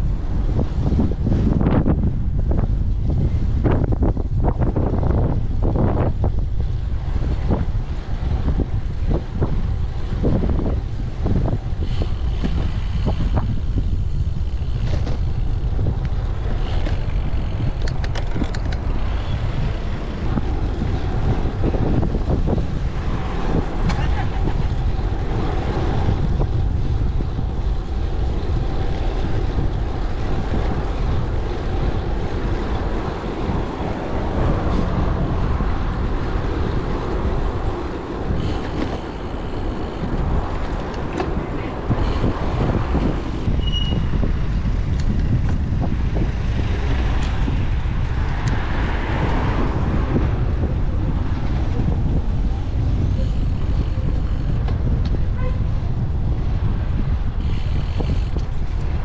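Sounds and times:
cars and trucks passing: 0:00.0 - 0:59.0
wind rumble on microphone: 0:00.0 - 0:59.0.

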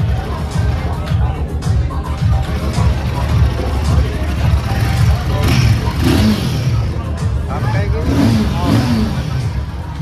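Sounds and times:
background music: 0:00.0 - 0:10.0
crowd voices: 0:00.0 - 0:10.0
motorcycle engine running: 0:00.0 - 0:10.0.

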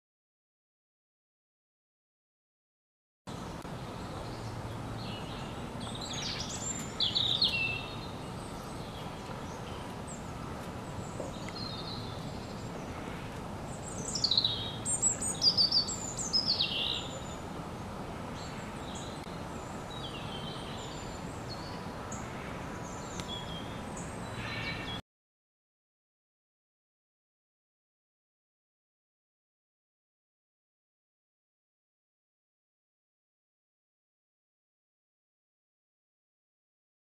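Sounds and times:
outdoor background noise: 0:03.3 - 0:25.0
songbird chirping: 0:03.3 - 0:25.0.

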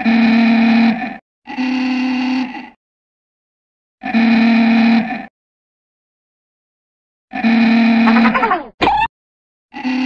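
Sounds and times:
cartoon character buzzy voice: 0:08.1 - 0:09.1.

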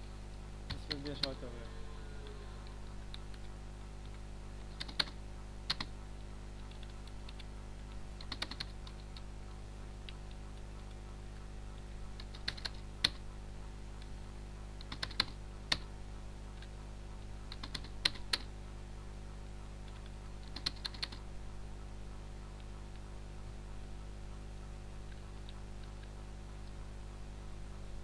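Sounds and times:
steady low hum: 0:00.0 - 0:28.0
computer keyboard typing: 0:00.7 - 0:01.4, 0:03.1 - 0:05.9, 0:06.6 - 0:09.3, 0:11.8 - 0:13.2, 0:14.8 - 0:15.9, 0:17.5 - 0:18.5, 0:19.8 - 0:21.3.

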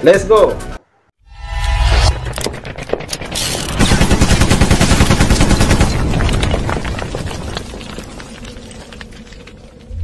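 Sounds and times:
rapid machine-gun fire: 0:03.2 - 0:06.3.

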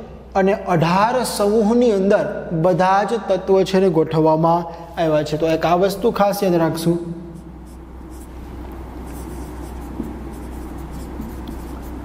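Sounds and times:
steady low hum: 0:04.7 - 0:12.0
marker scratching on whiteboard: 0:07.4 - 0:12.0.

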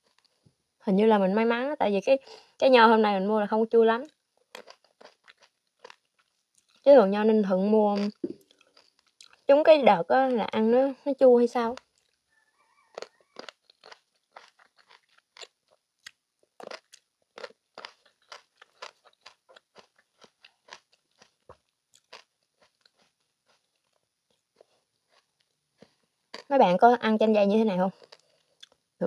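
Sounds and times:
chewing grapes crunches: 0:00.0 - 0:00.4, 0:04.0 - 0:06.9, 0:07.9 - 0:09.5, 0:11.7 - 0:26.5, 0:27.9 - 0:28.9.

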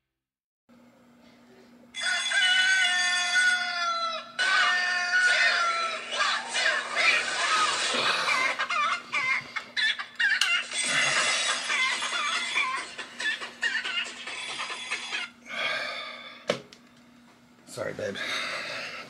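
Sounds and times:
rooster clucking and calling: 0:02.0 - 0:06.3
rooster crowing: 0:02.0 - 0:06.4.

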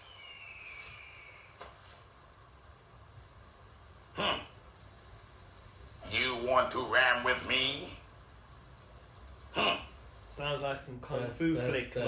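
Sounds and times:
whistled bird call: 0:00.0 - 0:01.6.

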